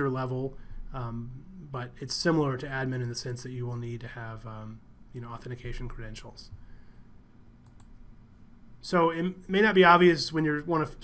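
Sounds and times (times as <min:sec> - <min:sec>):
man speaking: 0:00.0 - 0:06.6, 0:08.8 - 0:11.0
computer mouse clicks: 0:07.6 - 0:08.0.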